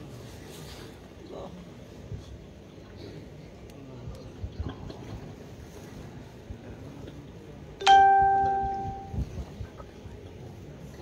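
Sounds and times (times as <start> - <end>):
bell-like chime: 7.8 - 9.2.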